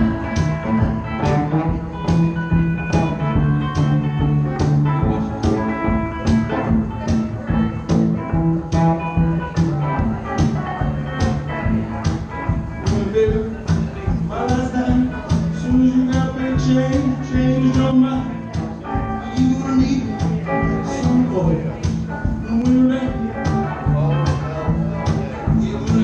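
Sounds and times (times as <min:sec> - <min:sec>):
amplified guitar playing: 0:00.0 - 0:26.0.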